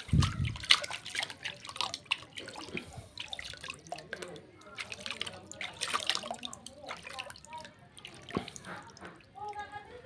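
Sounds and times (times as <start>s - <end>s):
water splashing in a bucket: 0.0s - 10.0s.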